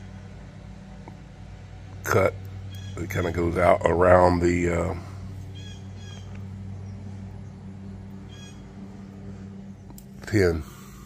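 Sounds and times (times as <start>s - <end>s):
steady low hum: 0.0s - 11.0s
short bird calls: 5.5s - 7.0s, 8.3s - 8.6s.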